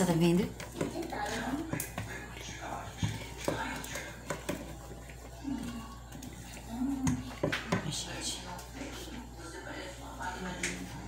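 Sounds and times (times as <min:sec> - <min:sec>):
faint murmuring voices: 0:00.5 - 0:11.0.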